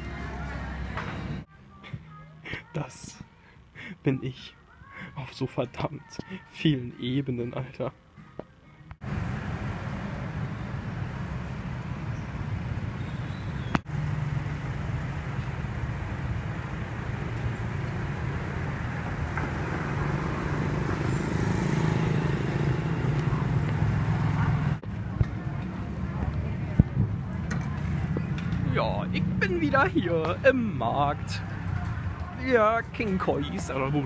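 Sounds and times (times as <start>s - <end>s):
road traffic rumbling: 0.0s - 2.5s, 8.0s - 34.0s.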